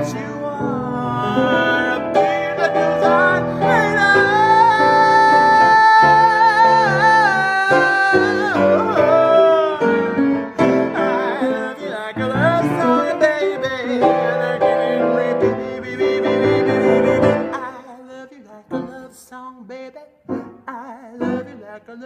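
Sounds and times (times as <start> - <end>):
jazz piano chords: 0.0 - 17.8, 20.3 - 21.7
woman singing: 15.7 - 22.0.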